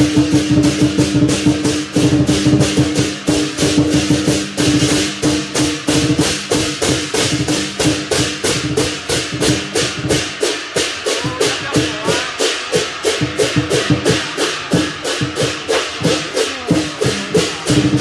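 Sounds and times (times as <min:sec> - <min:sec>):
cymbals clashing: 0:00.0 - 0:18.0
drum beating: 0:00.0 - 0:18.0.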